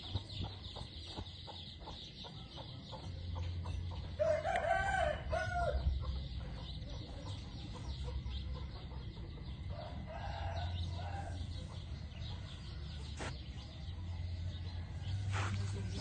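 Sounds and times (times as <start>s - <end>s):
rooster crowing: 4.2s - 5.8s.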